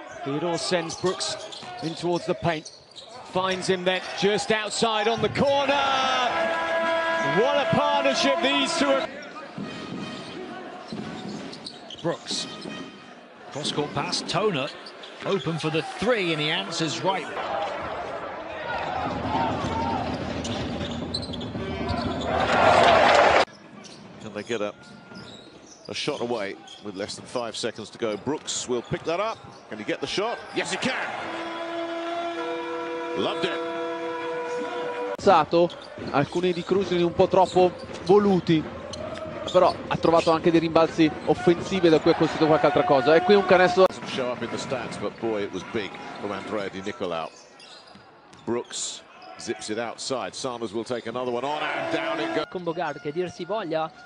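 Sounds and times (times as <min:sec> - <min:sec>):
crowd noise: 0:00.0 - 0:54.0
commentator talking: 0:07.0 - 0:09.1.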